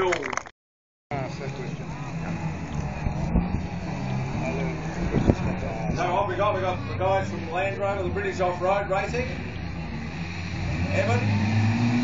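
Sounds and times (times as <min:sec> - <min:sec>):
truck engine droning: 0:01.1 - 0:12.0.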